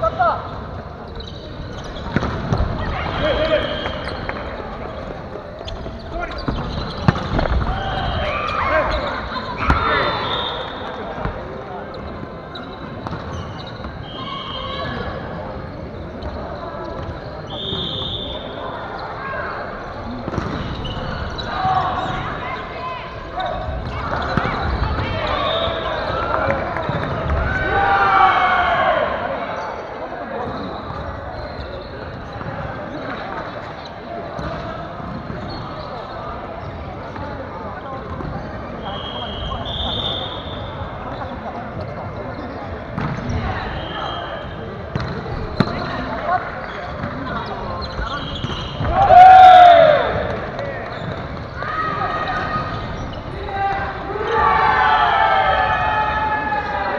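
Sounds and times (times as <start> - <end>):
players calling and talking: 0.0 - 56.9.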